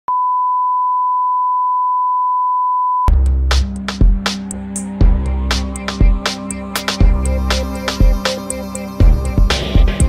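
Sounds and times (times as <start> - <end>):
steady test tone beep: 0.1 - 3.1.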